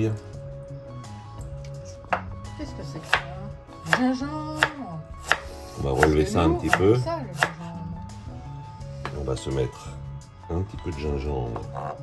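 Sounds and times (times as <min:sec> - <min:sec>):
knife striking wooden board: 0:03.0 - 0:04.0, 0:04.6 - 0:07.6
knife slicing ginger: 0:04.6 - 0:07.6.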